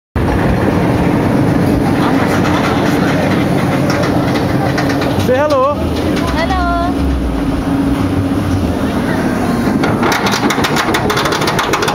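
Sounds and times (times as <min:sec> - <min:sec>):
roller coaster rumbling on track: 0:00.2 - 0:11.9
steady hum: 0:00.2 - 0:11.9.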